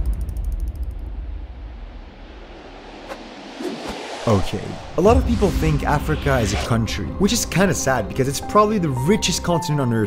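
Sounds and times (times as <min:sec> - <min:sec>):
deep boom rumble: 0:04.2 - 0:07.3.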